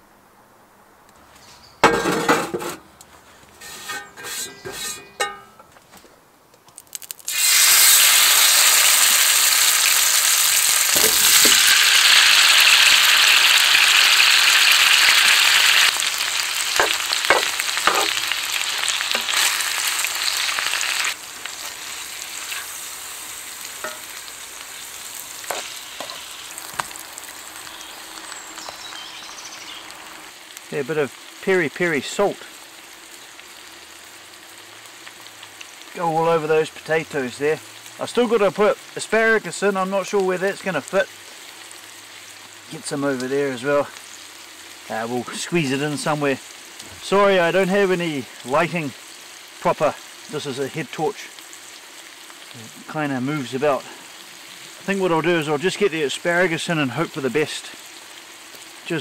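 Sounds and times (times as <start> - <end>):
meat and potatoes sizzling in a pan: 6.9 - 59.0.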